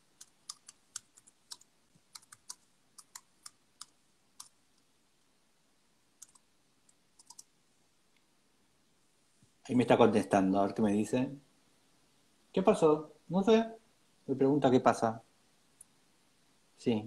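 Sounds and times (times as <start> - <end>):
keyboard typing clicks: 0.2 - 4.6, 6.2 - 7.5.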